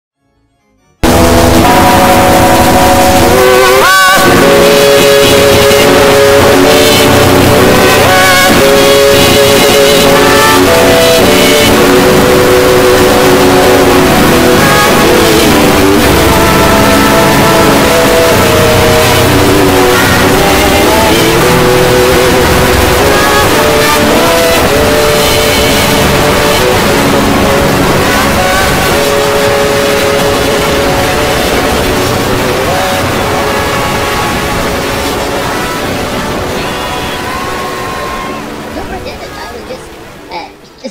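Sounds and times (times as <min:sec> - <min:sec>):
distorted wall of tones: 0:01.0 - 0:40.9.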